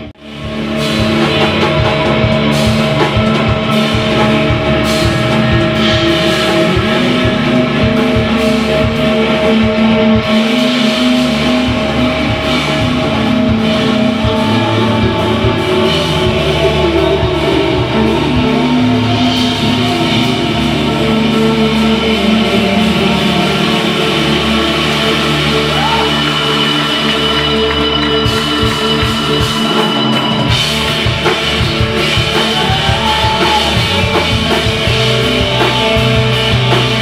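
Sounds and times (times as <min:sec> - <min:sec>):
bass drum beats: 0:00.0 - 0:37.0
electric guitars sustained chord: 0:00.0 - 0:37.0
indie rock band playing live: 0:00.0 - 0:37.0.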